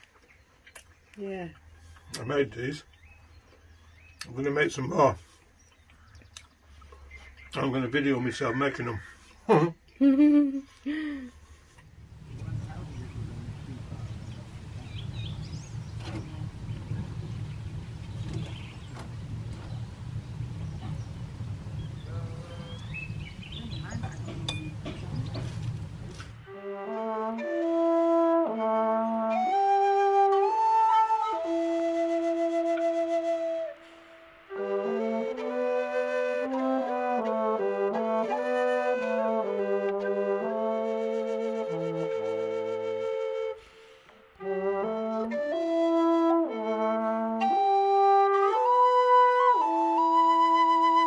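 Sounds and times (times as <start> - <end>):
wind rumble on microphone: 12.0 - 26.5
slow flute melody: 25.9 - 51.0.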